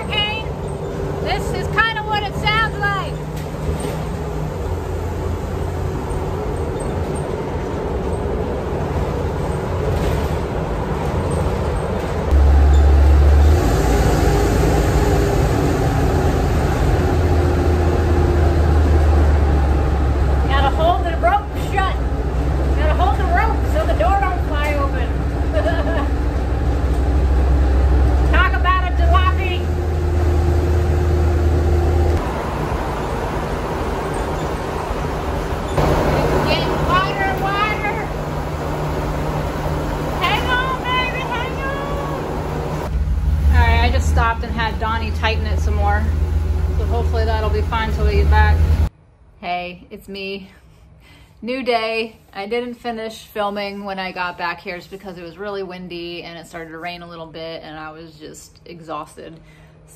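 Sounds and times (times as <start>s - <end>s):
bus engine and road rumble: 0.0s - 49.1s.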